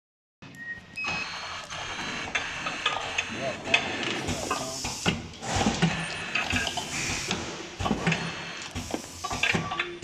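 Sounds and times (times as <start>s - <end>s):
short electronic beeps: 0.4s - 2.7s
machine running with high whine: 1.1s - 10.0s.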